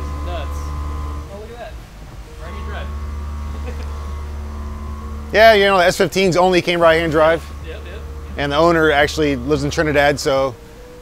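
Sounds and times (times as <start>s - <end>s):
machinery and fans humming: 0.0s - 11.0s
steady tones: 0.0s - 11.0s.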